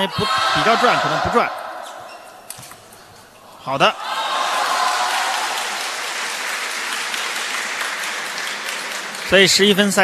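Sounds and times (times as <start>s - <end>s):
spectators applauding: 4.2s - 10.0s.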